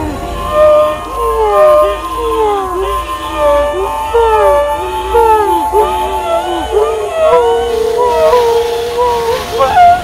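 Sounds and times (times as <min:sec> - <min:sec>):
woman howling: 0:00.0 - 0:10.0.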